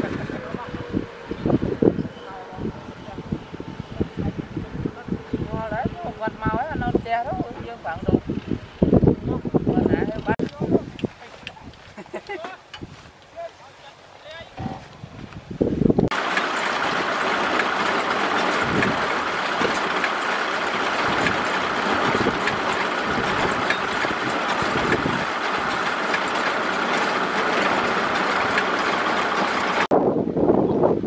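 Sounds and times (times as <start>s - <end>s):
baler mechanical clatter: 16.0s - 29.9s.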